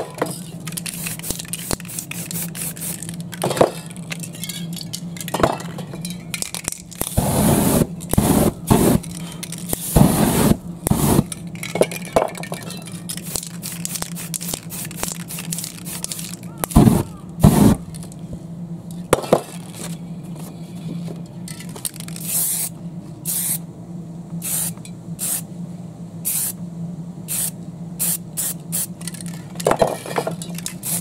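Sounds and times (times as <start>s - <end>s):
steady low hum: 0.0s - 31.0s
spray can hissing: 0.8s - 3.2s, 7.1s - 9.1s, 9.7s - 11.3s, 13.2s - 17.8s, 22.2s - 23.6s, 24.4s - 25.4s, 26.2s - 26.6s, 27.3s - 28.9s, 30.7s - 31.0s.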